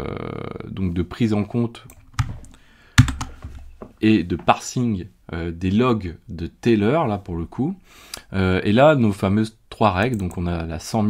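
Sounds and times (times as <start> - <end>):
computer keyboard keystrokes: 1.9 - 3.4.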